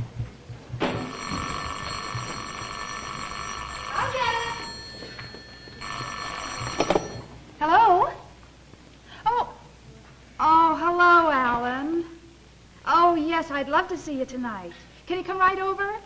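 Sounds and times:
telephone bell ringing: 0.9s - 7.4s.

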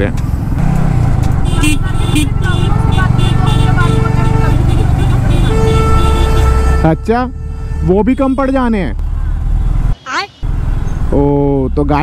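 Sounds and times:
motorcycle engine rumble: 0.0s - 7.3s.

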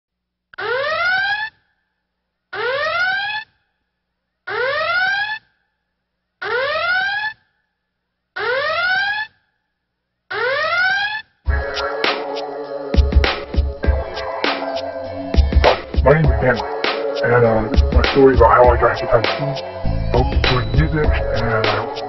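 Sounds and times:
electronic music with heavy bass: 11.5s - 12.4s, 13.0s - 22.0s.

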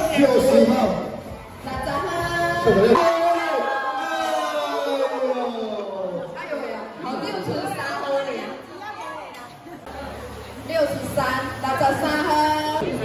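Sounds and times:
crowd chatter: 0.0s - 13.0s
speech over loudspeakers: 0.0s - 13.0s.

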